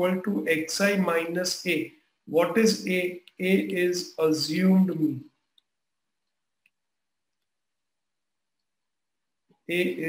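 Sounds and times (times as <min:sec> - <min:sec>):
man speaking: 0:00.0 - 0:05.4, 0:09.7 - 0:10.0.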